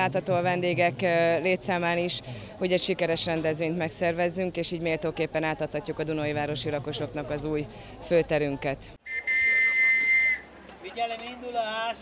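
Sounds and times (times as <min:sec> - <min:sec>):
whistle blown: 0:09.0 - 0:10.5.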